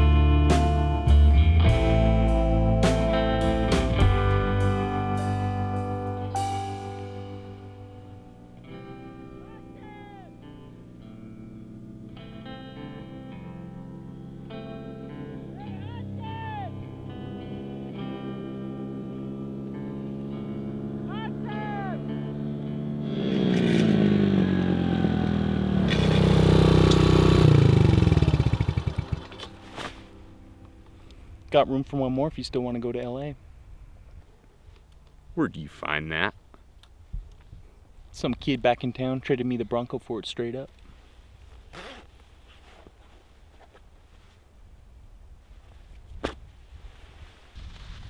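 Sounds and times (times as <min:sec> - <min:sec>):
background music with held chords: 0:00.0 - 0:23.4, 0:26.4 - 0:31.6
small motorbike engine: 0:22.0 - 0:29.9.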